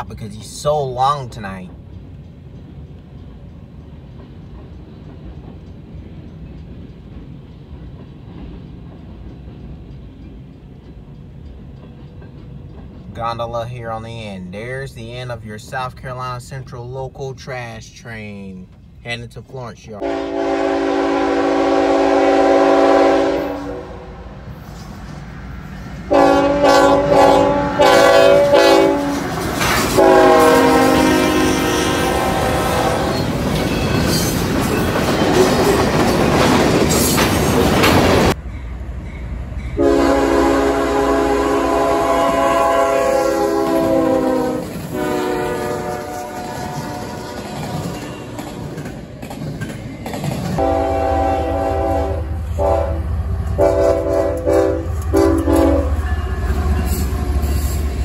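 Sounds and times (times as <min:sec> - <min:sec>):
passing train: 0:00.0 - 0:58.0
locomotive air horn blasts: 0:20.0 - 0:24.2, 0:26.1 - 0:29.2, 0:29.9 - 0:33.1, 0:39.8 - 0:48.0, 0:50.6 - 0:57.6.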